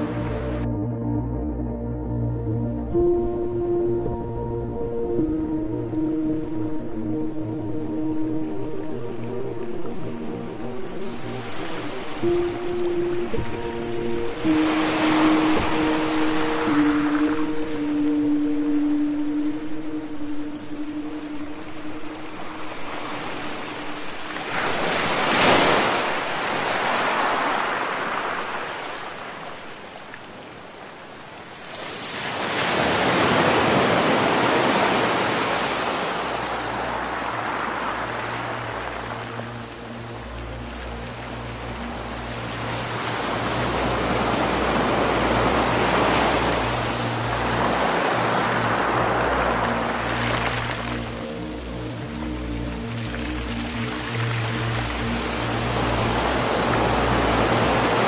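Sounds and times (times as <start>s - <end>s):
low sustained drone notes: 0.0s - 28.6s, 36.2s - 58.0s
ambient music chord: 0.0s - 58.0s
ocean waves washing in: 2.8s - 58.0s.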